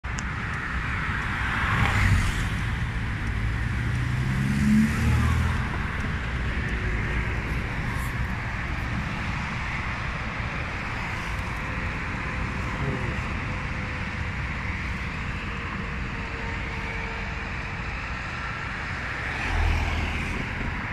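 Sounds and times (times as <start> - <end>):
wind and road noise: 0.0 - 20.9.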